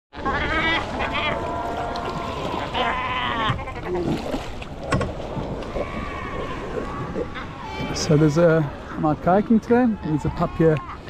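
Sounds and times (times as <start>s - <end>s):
water splashing and paddling: 0.1s - 11.0s
seals crying: 0.2s - 4.4s, 5.6s - 11.0s.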